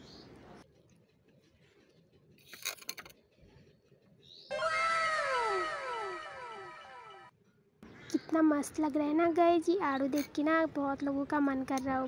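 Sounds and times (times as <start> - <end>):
cat-like descending calls: 4.5 - 7.3.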